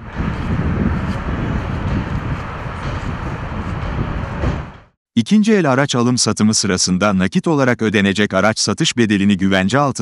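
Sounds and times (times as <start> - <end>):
low rumble of traffic: 0.0 - 5.0
wind buffeting microphone: 0.0 - 5.0.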